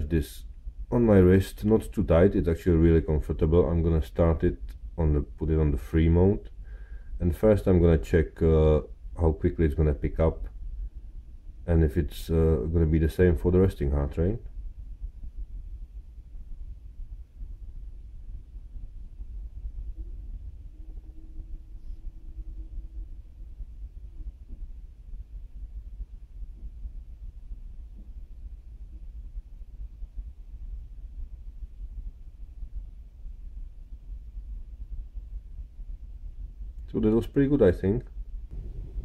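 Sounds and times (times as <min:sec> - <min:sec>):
low background rumble: 0:00.0 - 0:39.0
faint brief hum: 0:38.5 - 0:39.0.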